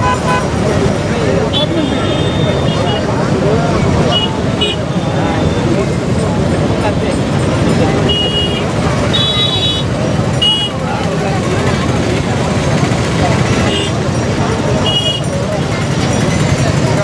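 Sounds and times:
vehicle horns honking: 0:00.0 - 0:00.6, 0:01.5 - 0:03.2, 0:04.0 - 0:05.7, 0:08.0 - 0:10.9, 0:13.5 - 0:14.1, 0:14.8 - 0:15.4
crowd voices: 0:00.0 - 0:17.0
traffic noise: 0:00.0 - 0:17.0.

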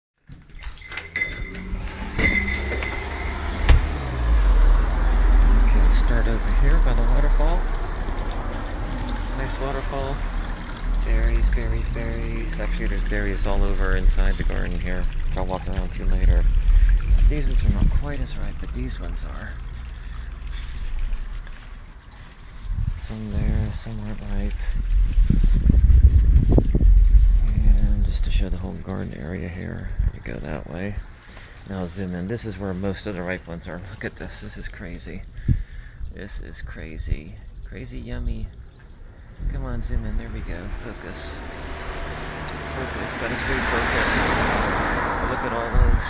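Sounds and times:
steady low rumble: 0:01.8 - 0:21.5, 0:22.6 - 0:31.1, 0:37.8 - 0:43.9
waterfall splashing and trickling: 0:02.6 - 0:36.1, 0:37.7 - 0:46.0
low microphone rumble: 0:22.6 - 0:31.0, 0:39.2 - 0:46.0.

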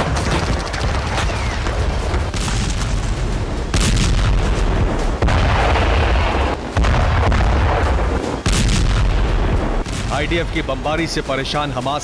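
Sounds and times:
explosion booms: 0:00.0 - 0:10.4
deep continuous rumble: 0:00.0 - 0:12.0.

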